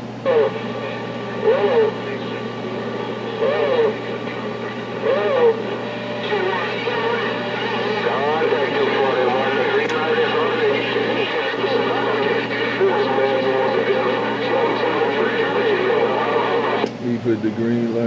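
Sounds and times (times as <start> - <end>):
steady low hum: 0.0 - 18.0
voices over cb radio speaker: 0.2 - 16.8.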